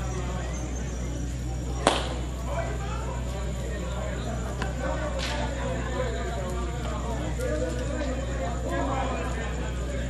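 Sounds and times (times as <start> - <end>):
faint voices: 0.0 - 10.0
street noise: 0.0 - 10.0
sharp crack: 1.8 - 2.3.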